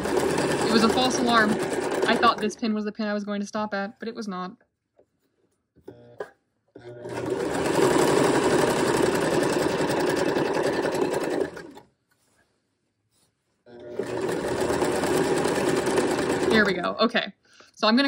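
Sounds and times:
electric sewing machine stitching: 0.0 - 2.6, 6.8 - 11.9, 13.7 - 17.0.

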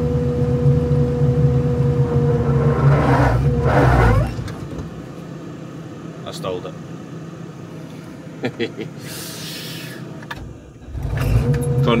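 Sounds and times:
machine whine: 0.0 - 6.0
combine harvester rumble: 0.0 - 12.0.

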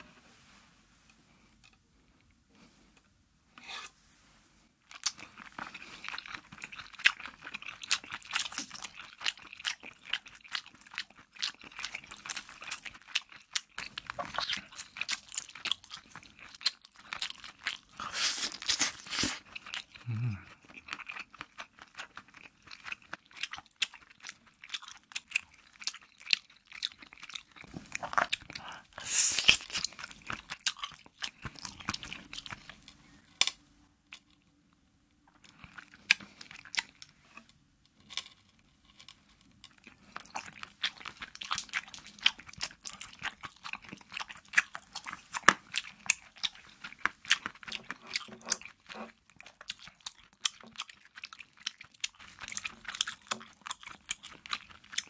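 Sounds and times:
close chewing and crunching: 4.8 - 34.6, 35.3 - 55.0.

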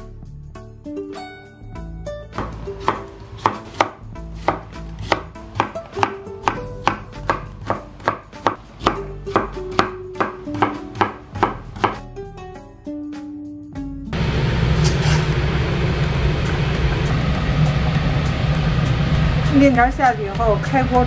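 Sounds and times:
knife chopping on wooden board: 2.4 - 12.0.

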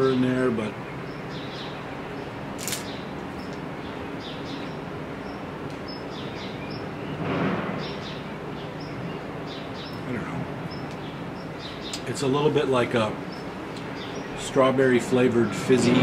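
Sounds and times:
small birds chirping: 0.0 - 16.0
steady background noise: 0.0 - 16.0
rush of noise: 6.8 - 8.6.

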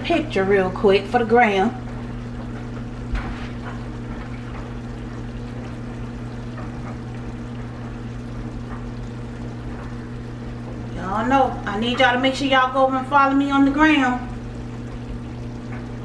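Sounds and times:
steady low hum: 0.0 - 16.0
sauce bubbling: 0.1 - 16.0.

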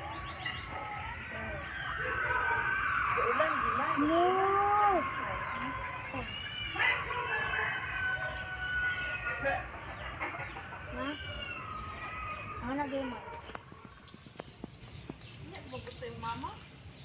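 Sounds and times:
rooster crowing: 1.7 - 12.8.

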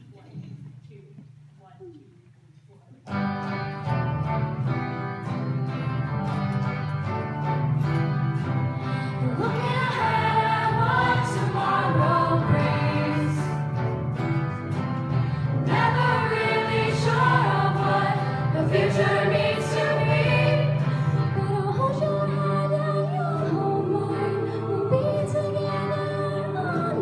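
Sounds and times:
choir singing: 9.2 - 14.7, 15.5 - 27.0.

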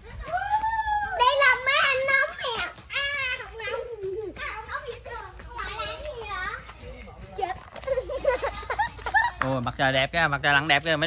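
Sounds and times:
children calling and chattering: 0.0 - 11.0.

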